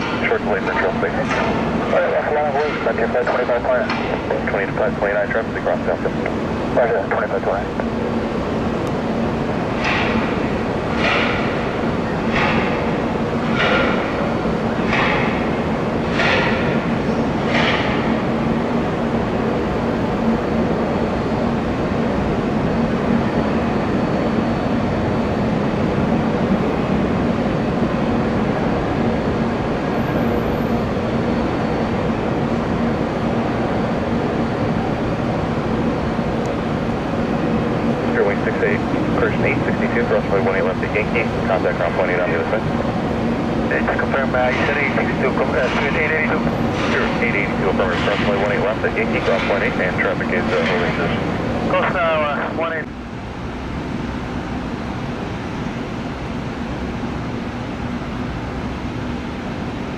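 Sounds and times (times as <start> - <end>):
jet engines roaring: 0.0 - 53.1.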